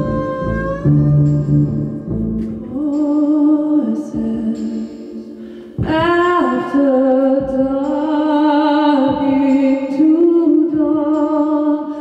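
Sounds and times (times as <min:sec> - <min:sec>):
low bowed string notes: 0:00.0 - 0:03.1.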